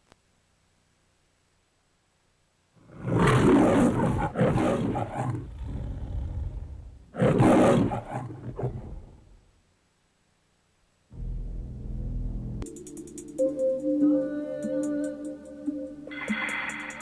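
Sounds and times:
lion roaring: 2.8 - 9.4.

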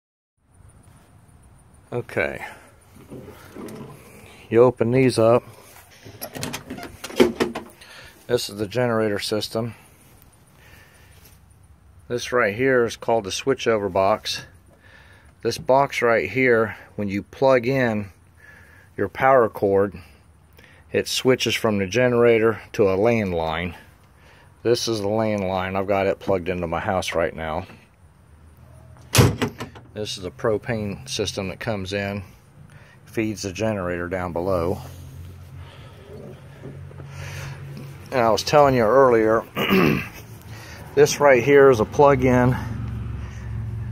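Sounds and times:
metal compartment clicks and knocks: 6.0 - 7.8, 29.0 - 30.0.

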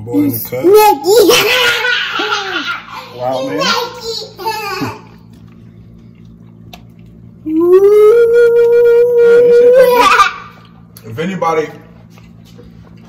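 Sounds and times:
man's high-pitched vocal wail: 7.5 - 10.2.

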